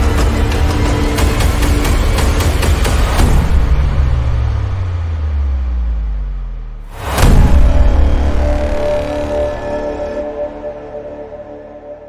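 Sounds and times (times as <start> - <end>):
film soundtrack music: 0.0 - 12.0.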